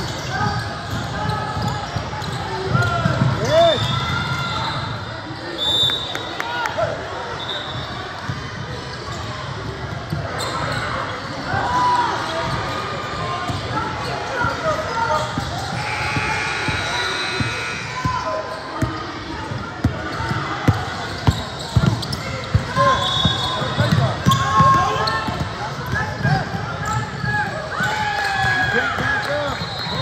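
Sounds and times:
voices of players and spectators: 0:00.0 - 0:30.0.

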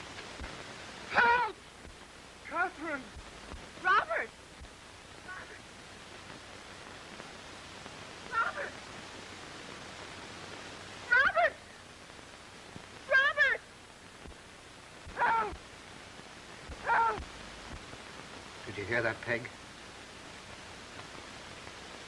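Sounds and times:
film soundtrack hiss: 0:00.0 - 0:22.0
person crying for help: 0:01.1 - 0:01.6, 0:15.2 - 0:15.6, 0:16.8 - 0:17.2.

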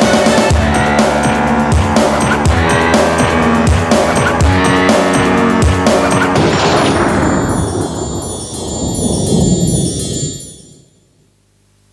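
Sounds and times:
wind chimes shimmering: 0:07.0 - 0:11.1.

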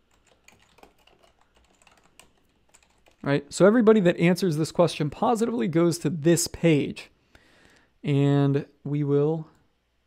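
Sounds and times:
typing on computer keyboard: 0:00.0 - 0:03.3.

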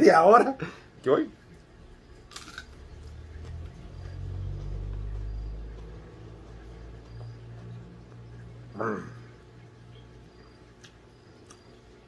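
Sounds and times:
teeth crunching raw onion: 0:02.2 - 0:03.7.

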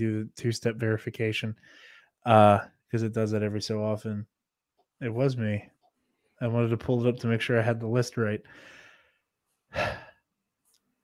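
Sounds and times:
man sighing: 0:09.7 - 0:10.3.

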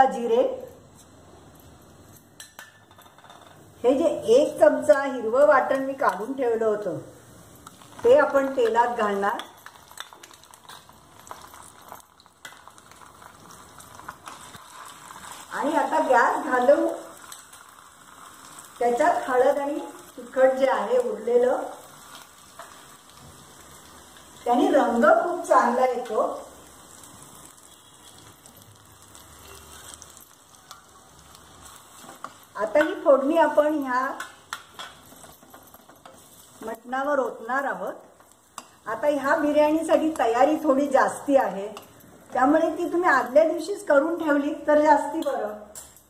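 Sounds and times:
seeds sizzling in hot oil: 0:02.0 - 0:46.0.

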